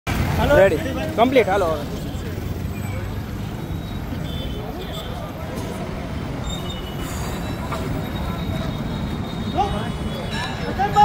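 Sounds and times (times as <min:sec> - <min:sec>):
rumble of passing vehicles: 0:00.1 - 0:11.0.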